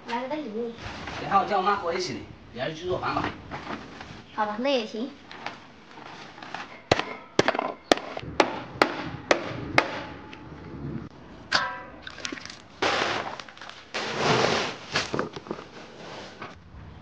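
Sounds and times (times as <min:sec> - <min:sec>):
sharp knocks: 0:06.9 - 0:10.3
plants tipped out of sack: 0:12.8 - 0:15.9.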